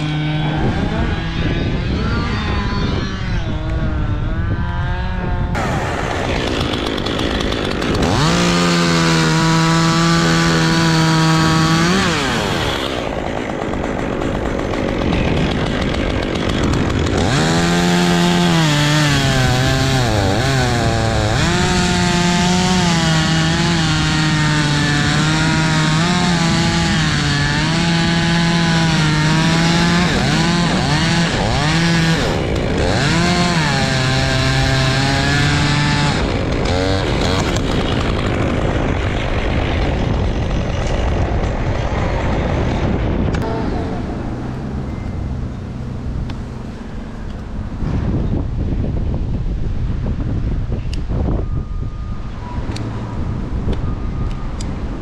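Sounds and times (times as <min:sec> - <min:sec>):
chainsaw cutting wood: 0:00.0 - 0:46.4.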